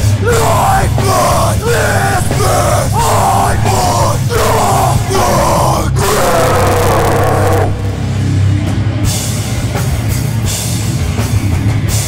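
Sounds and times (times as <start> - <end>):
hoarse yelled vocals: 0.0 - 8.2
low droning guitar and bass: 0.0 - 12.0.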